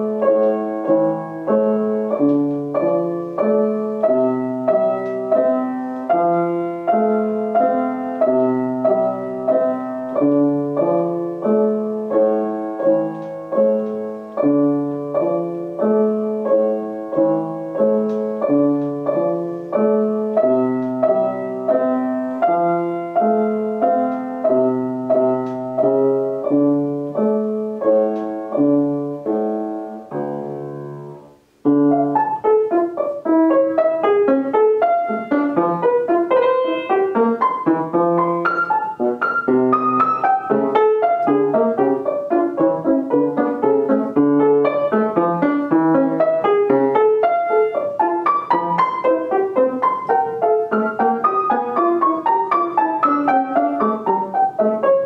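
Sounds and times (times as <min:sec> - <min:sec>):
grand piano playing: 0:00.0 - 0:55.0.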